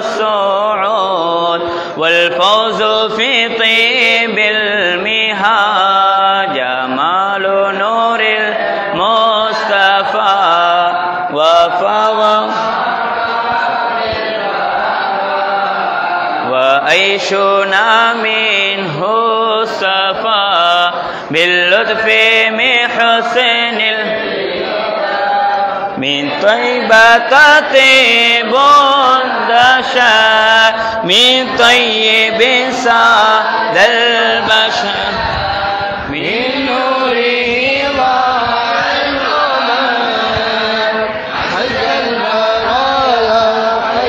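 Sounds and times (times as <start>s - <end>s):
men chanting devotional verses: 0.0s - 44.0s.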